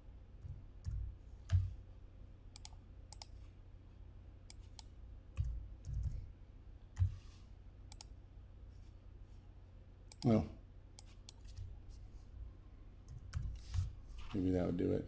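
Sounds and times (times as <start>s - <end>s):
computer mouse clicks: 2.5s - 3.4s, 4.5s - 6.2s, 7.9s - 8.2s, 10.1s - 10.3s, 11.0s - 11.7s.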